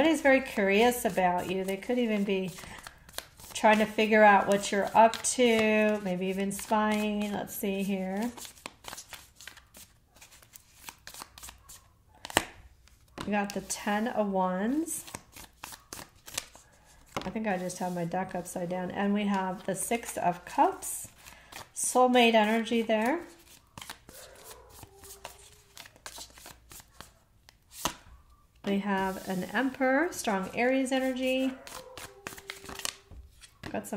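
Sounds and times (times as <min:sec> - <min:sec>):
cards shuffling: 0:00.2 - 0:14.0, 0:14.8 - 0:33.7.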